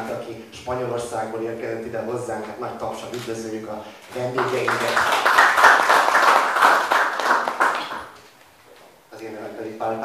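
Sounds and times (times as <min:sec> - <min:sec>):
audience applauding: 0:04.2 - 0:08.2.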